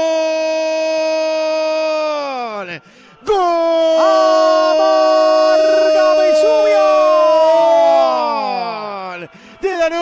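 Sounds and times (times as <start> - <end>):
commentator shouting goal: 3.4 - 9.1.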